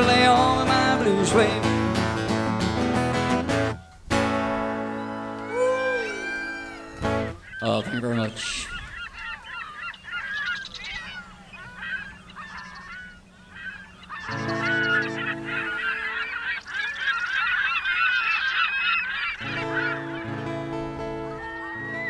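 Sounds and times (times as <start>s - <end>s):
birds honking: 0.0s - 22.0s.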